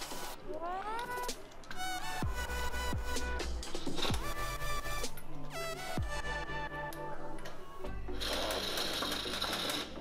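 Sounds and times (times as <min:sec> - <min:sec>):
electronic music: 0:00.0 - 0:10.0.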